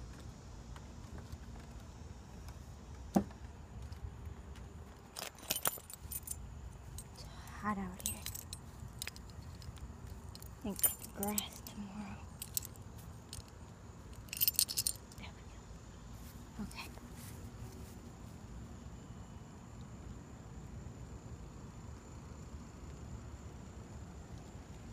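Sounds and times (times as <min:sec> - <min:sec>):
keys jangling: 0:05.1 - 0:07.3, 0:08.0 - 0:15.2.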